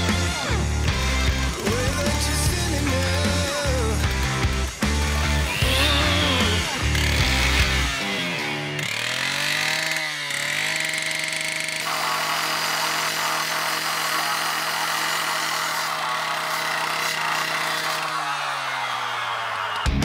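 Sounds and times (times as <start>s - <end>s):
blade cutting concrete: 0.0s - 19.8s
disc cutter engine running: 0.0s - 20.0s.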